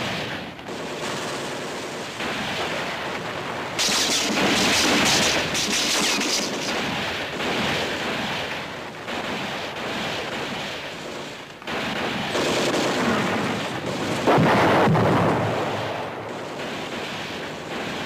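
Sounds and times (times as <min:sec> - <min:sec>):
gunfire and explosions rumble: 0:00.0 - 0:18.0.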